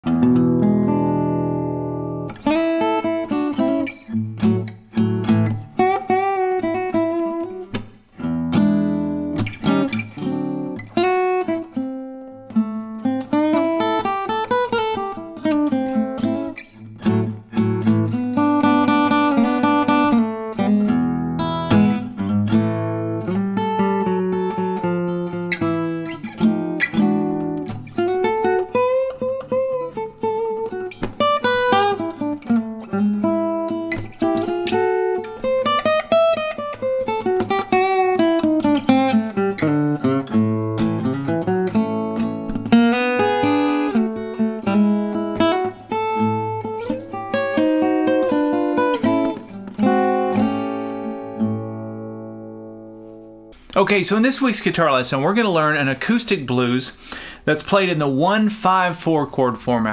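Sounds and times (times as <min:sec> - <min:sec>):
acoustic blues guitar: 0:00.0 - 0:59.9.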